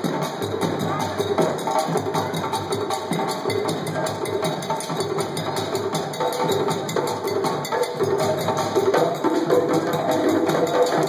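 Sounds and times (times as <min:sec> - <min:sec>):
hand drums playing fast rhythm: 0:00.0 - 0:11.0.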